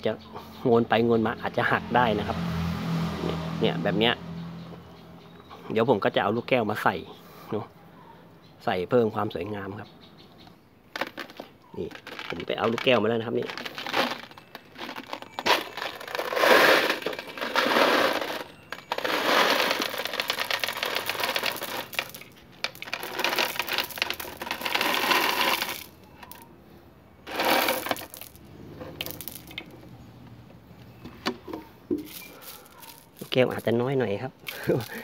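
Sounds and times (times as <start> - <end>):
glass marbles clattering into pot: 11.0 - 26.5, 27.3 - 29.7, 32.0 - 33.8, 34.5 - 35.0.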